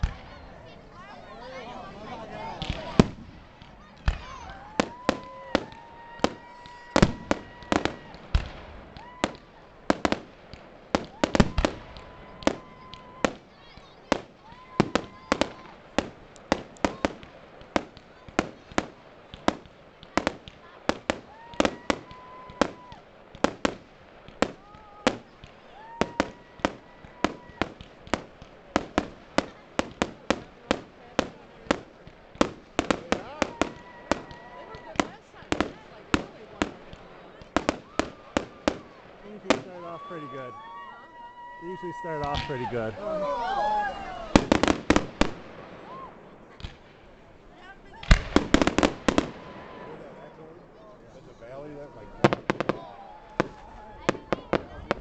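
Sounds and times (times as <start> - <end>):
fireworks bursting with bangs and crackles: 0.0 - 55.0.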